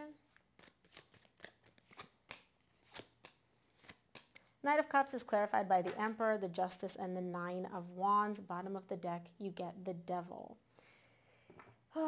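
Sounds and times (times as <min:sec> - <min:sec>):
cards being shuffled: 0:00.3 - 0:04.5.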